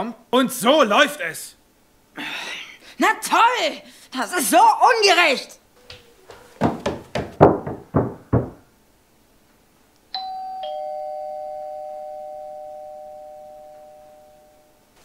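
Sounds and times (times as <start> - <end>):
footsteps on wooden stairs: 5.8 - 8.7
two-tone doorbell chime: 10.2 - 14.8.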